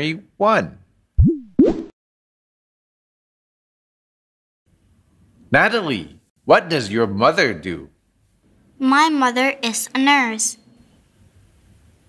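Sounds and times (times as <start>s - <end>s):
cartoon pops with sliding pitch: 1.2s - 1.9s.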